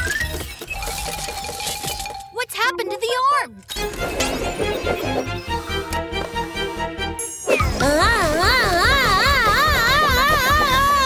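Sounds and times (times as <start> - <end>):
background music: 2.2 - 11.0.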